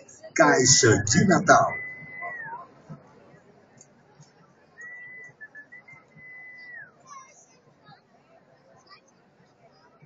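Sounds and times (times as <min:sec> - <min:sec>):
low murmur: 0:00.0 - 0:04.7.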